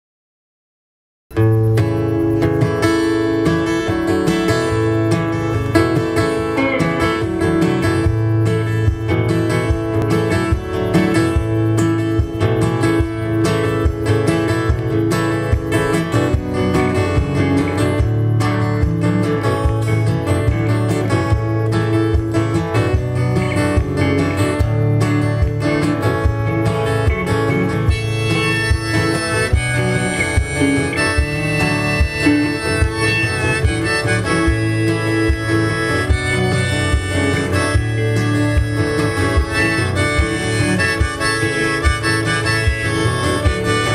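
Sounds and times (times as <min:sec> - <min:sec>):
acoustic guitar strumming: 0:01.3 - 0:43.9
electric guitar playing: 0:01.3 - 0:43.9.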